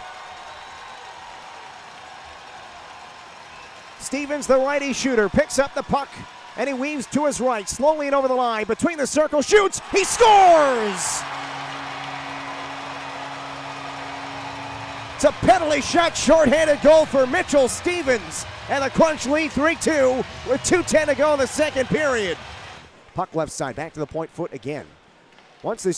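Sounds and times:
arena crowd noise: 0.0s - 25.9s.

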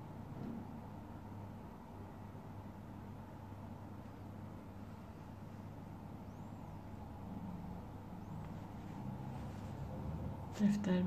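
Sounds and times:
low background hum: 0.0s - 11.0s
faint high chirps: 6.1s - 7.1s.

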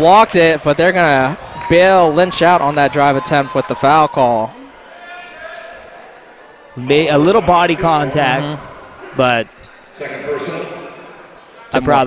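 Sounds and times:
commentator speaking: 6.8s - 11.0s.

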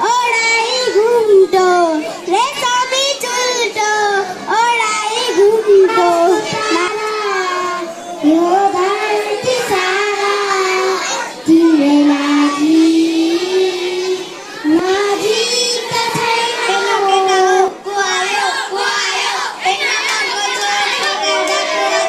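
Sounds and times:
girl singing into a microphone: 0.0s - 18.3s.

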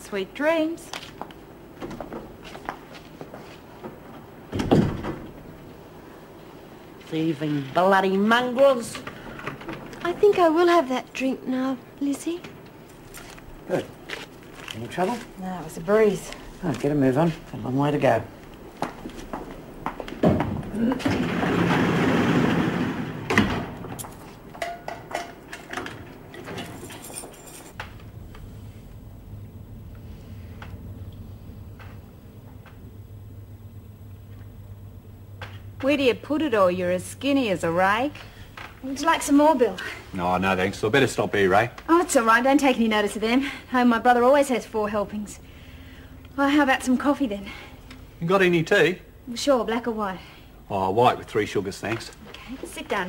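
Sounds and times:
cell door shutting with thud: 4.5s - 5.4s
keys rattling in lock: 26.5s - 27.8s.

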